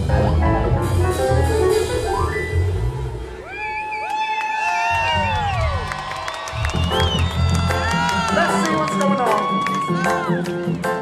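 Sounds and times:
live reggae band playing: 0.0s - 3.5s
crowd cheering and whooping: 2.9s - 10.8s.

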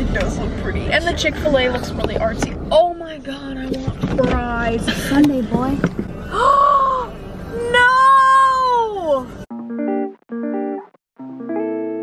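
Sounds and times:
plucked guitar music: 9.5s - 12.0s.

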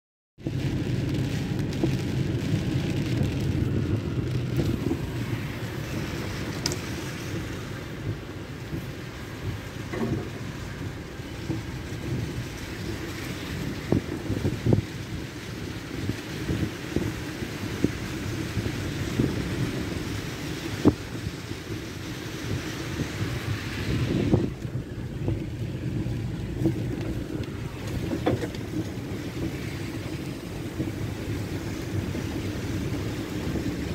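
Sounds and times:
storm wind buffeting microphone: 0.4s - 33.9s.

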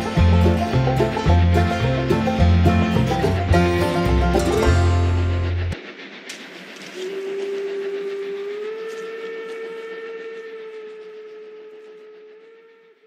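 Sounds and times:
running train: 0.0s - 13.0s
steam locomotive whistle: 6.8s - 13.0s.

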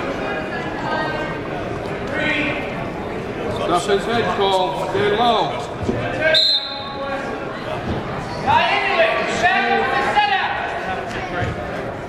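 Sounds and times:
voices in echoing gym: 0.0s - 12.0s
referee's whistle: 6.3s - 7.0s.

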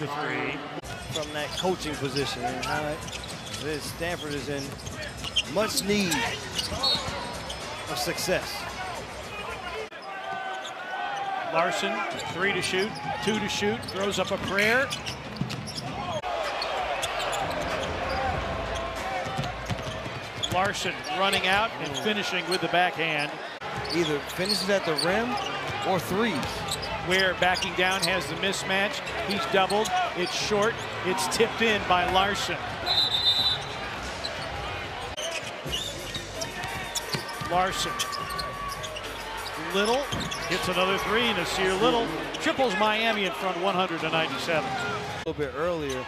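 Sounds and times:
murmur of arena crowd: 0.0s - 46.0s
sneakers squeaking: 0.8s - 8.5s, 9.2s - 11.4s, 12.0s - 43.4s
basketball bouncing: 19.2s - 20.7s.

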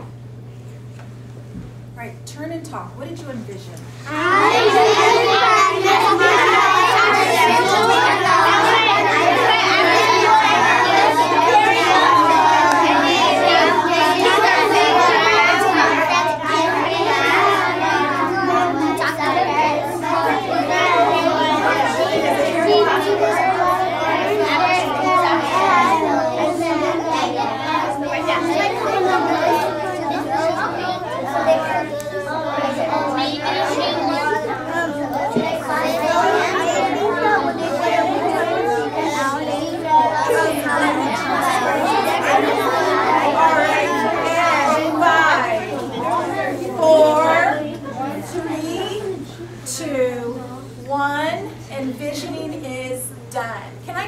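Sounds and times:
steady low hum: 0.0s - 54.0s
children's voices babbling: 4.0s - 50.8s.

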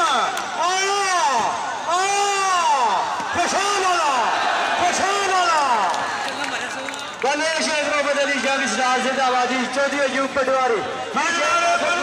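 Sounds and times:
commentator calling: 0.0s - 12.0s.

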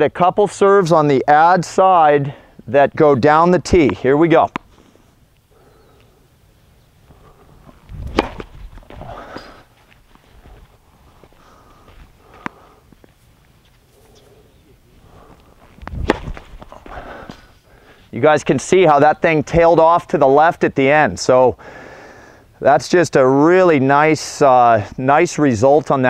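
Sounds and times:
racket striking tennis ball: 3.8s - 4.7s, 7.6s - 9.7s, 15.8s - 17.5s
movement on hard court: 7.0s - 14.4s, 15.0s - 18.2s.

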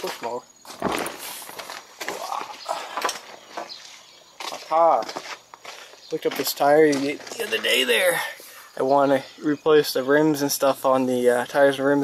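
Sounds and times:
footsteps walking: 0.0s - 7.9s.

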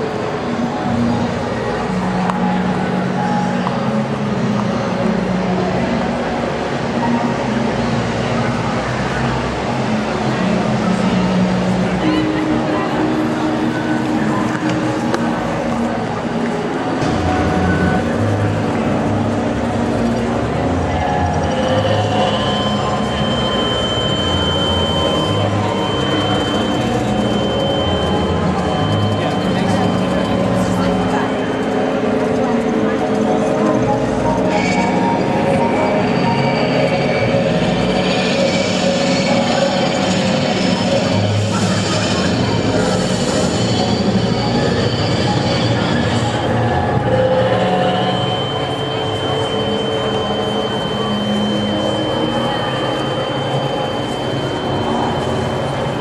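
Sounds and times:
muffled voices and noise: 0.0s - 56.0s
thin high tone: 10.3s - 56.0s.

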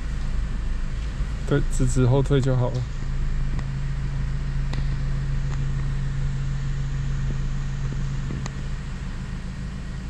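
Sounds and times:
car engine low hum: 0.0s - 10.0s.

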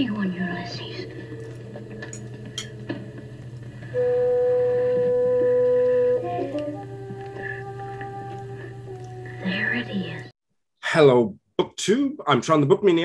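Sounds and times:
film soundtrack held notes: 0.0s - 10.3s
low hum: 0.0s - 10.3s.

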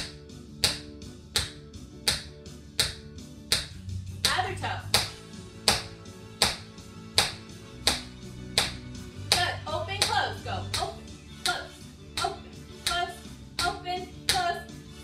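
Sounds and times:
background music with sustained tones: 0.0s - 15.0s
tap shoes on hardwood floor: 5.0s - 10.9s.

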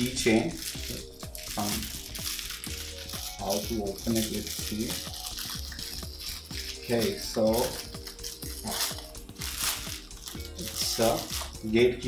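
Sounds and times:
plastic bag crinkling: 0.0s - 11.7s
soft background music: 0.0s - 12.0s.

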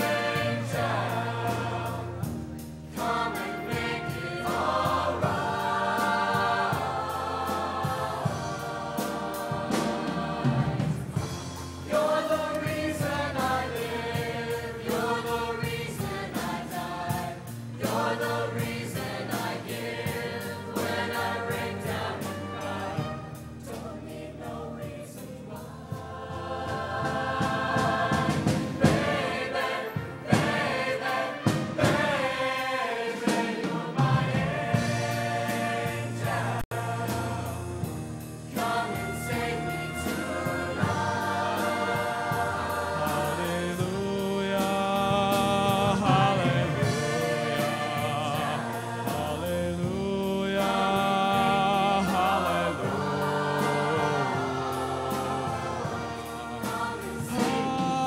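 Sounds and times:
choir singing in harmony: 0.0s - 58.0s
instrumental accompaniment: 0.0s - 58.0s.

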